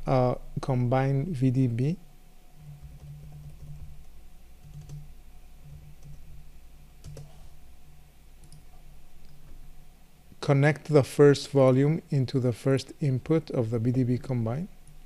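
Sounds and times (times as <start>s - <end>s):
faint low hum: 0.0s - 15.0s
keyboard and mouse clicks: 4.6s - 5.1s, 8.4s - 9.4s.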